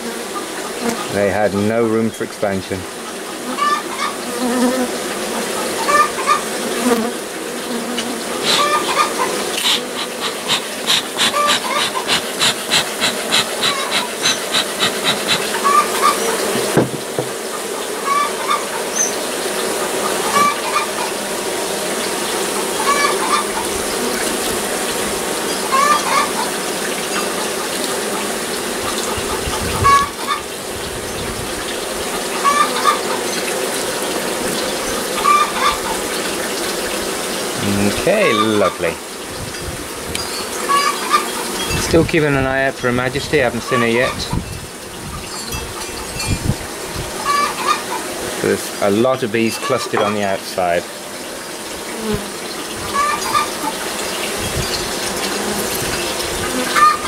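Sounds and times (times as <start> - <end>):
bee colony buzzing: 0.0 - 57.0
hen complaining calls: 3.4 - 4.2, 5.5 - 6.5, 8.3 - 16.7, 18.0 - 18.9, 19.9 - 21.2, 22.8 - 23.7, 25.7 - 26.6, 29.3 - 30.5, 32.4 - 33.2, 35.1 - 36.1, 37.6 - 39.0, 40.6 - 41.8, 43.3 - 44.4, 47.2 - 50.8, 52.9 - 53.9, 56.6 - 57.0.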